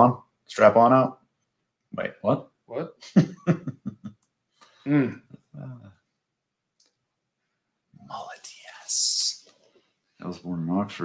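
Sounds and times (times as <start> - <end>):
man humming and chuckling: 3.0 - 4.1.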